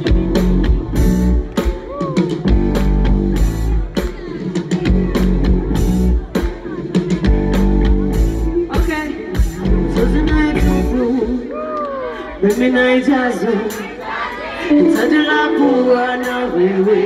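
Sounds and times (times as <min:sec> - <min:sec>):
drum kit beat: 0:00.0 - 0:11.4
bass and guitar chords: 0:00.0 - 0:11.5.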